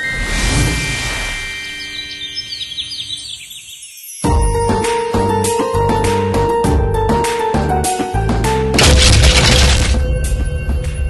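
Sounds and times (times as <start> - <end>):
bird chirps: 1.1 - 4.3.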